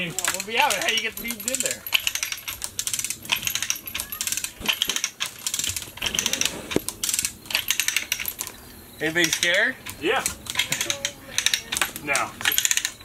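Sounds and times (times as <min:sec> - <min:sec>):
chain hoist clicking and rattling: 0:00.0 - 0:13.0.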